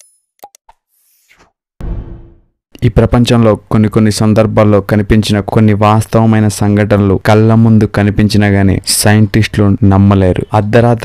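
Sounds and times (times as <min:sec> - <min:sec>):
loud low ringing hit: 0:01.8 - 0:02.5.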